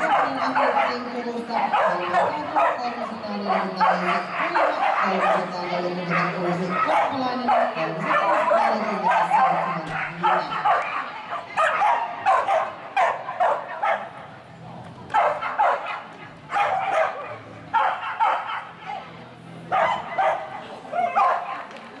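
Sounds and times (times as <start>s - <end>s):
dog barking in high yips: 0.0s - 14.1s, 15.1s - 19.0s, 19.7s - 21.7s.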